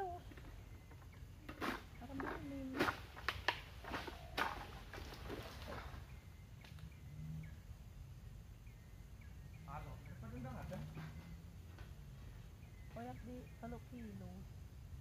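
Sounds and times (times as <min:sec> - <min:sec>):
low steady rumble: 0:00.0 - 0:15.0
sharp knocks and cracks: 0:00.3 - 0:06.0
faint bird chirps: 0:03.9 - 0:14.5.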